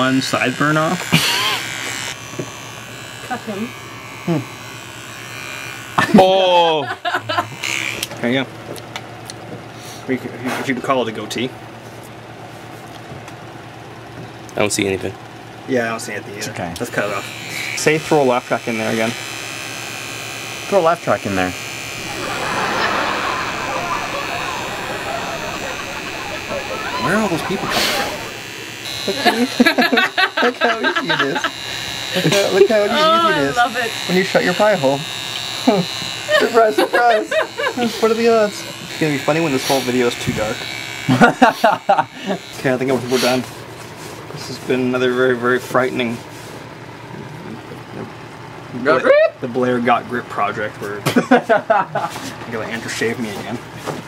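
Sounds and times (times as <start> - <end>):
electric shaver buzzing: 0.0 - 8.2, 16.8 - 44.0
murmur of many people talking: 22.0 - 28.5
voice: 22.1 - 28.4, 30.5 - 31.5.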